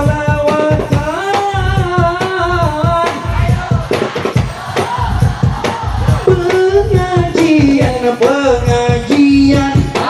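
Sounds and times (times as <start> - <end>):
frame drums beating: 0.0 - 10.0.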